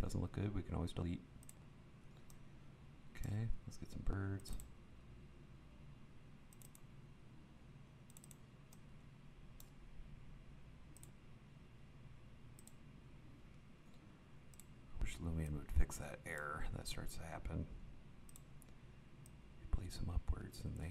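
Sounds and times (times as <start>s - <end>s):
low steady hum: 0.0s - 20.9s
computer mouse clicks: 1.4s - 2.4s, 4.1s - 4.8s, 6.5s - 6.9s, 8.1s - 8.9s, 9.6s - 9.8s, 10.9s - 11.2s, 12.6s - 12.8s, 13.5s - 14.8s, 18.3s - 19.4s.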